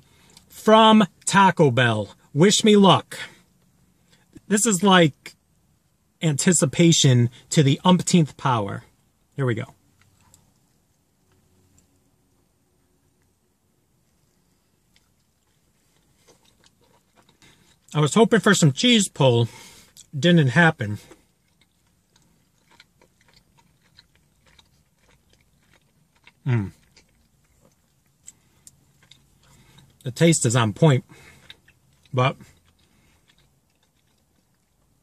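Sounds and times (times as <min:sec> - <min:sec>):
soft crunching and chewing: 0:00.0 - 0:01.4, 0:03.1 - 0:05.5, 0:07.3 - 0:35.0.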